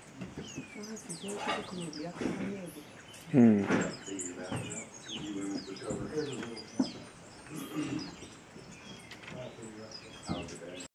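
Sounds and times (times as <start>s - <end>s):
birds chirping: 0.0s - 10.9s
murmured human voices: 0.8s - 8.3s.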